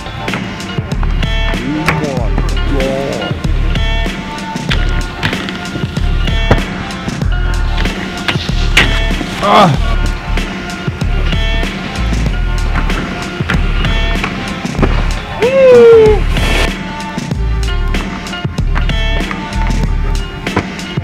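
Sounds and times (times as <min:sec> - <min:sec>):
music with heavy bass and beat: 0:00.0 - 0:21.0.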